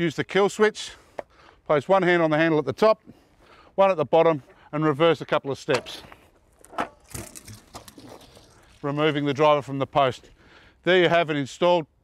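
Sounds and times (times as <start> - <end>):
footsteps crunching on gravel: 5.4 - 10.3
scuffing on gravel: 5.8 - 9.7.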